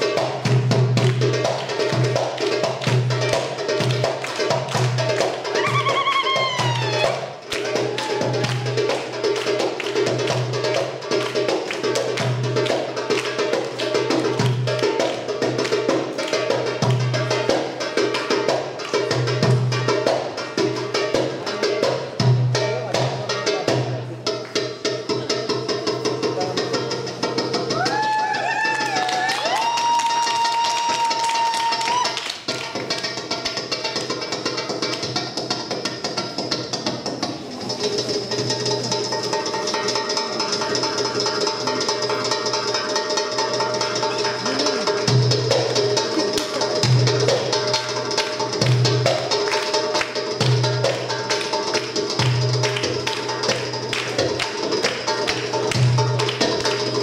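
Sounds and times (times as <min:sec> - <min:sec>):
goblet drum played fast: 0:00.0 - 0:57.0.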